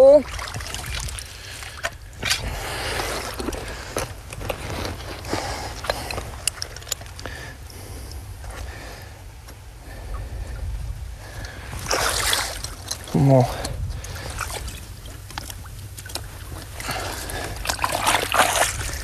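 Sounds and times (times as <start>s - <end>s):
creek water sloshing and splashing: 0.0s - 7.3s, 11.2s - 19.0s.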